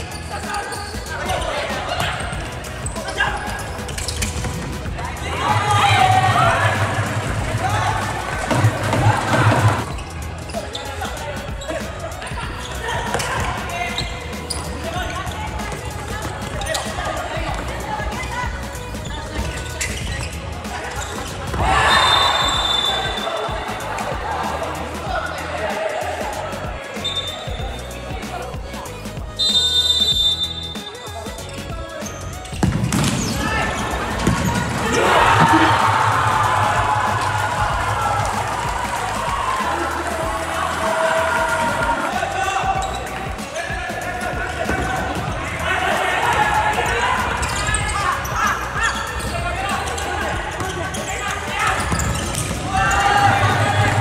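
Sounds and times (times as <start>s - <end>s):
background music: 0.0s - 54.0s
players shouting: 0.2s - 28.3s, 33.0s - 54.0s
referee whistle: 21.8s - 23.4s, 27.0s - 27.6s, 29.4s - 31.0s.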